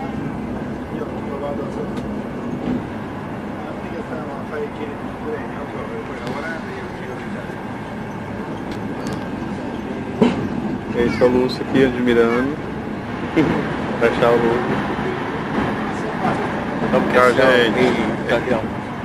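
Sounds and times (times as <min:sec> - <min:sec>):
faint passenger voices: 0:00.0 - 0:19.0
train rumble inside carriage: 0:00.0 - 0:19.0.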